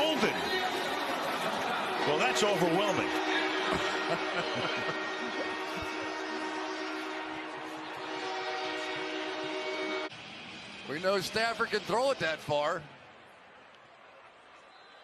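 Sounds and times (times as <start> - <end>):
stadium crowd cheering: 0.0 - 15.0
commentator laughing: 3.6 - 6.7.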